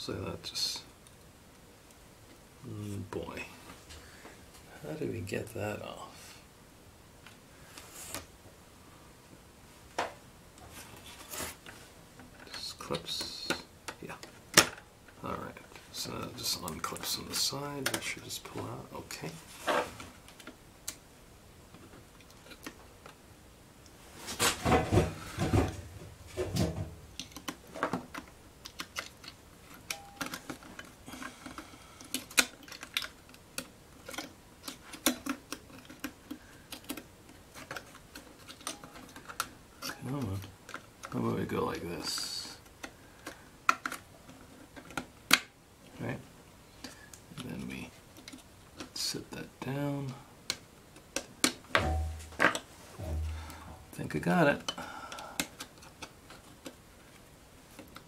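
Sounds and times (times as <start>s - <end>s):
fingers clicking computer parts: 27.2s - 41.2s.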